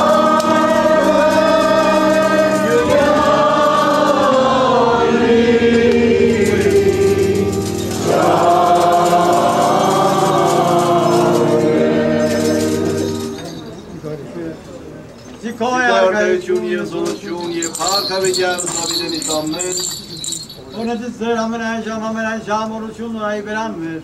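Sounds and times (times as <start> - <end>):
choir singing a hymn: 0.0 - 13.3.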